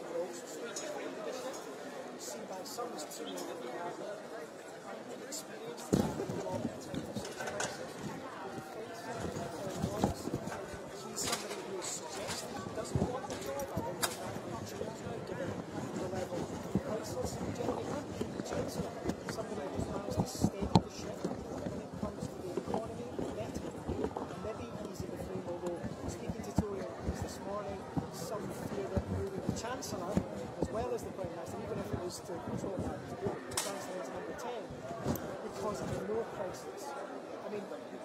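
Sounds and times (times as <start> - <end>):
chatter of many voices: 0.0 - 38.0
murmur of people talking: 0.0 - 38.0.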